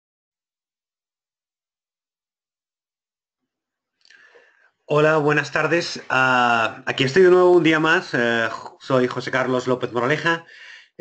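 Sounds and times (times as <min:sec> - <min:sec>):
faint recording hiss: 0:04.0 - 0:11.0.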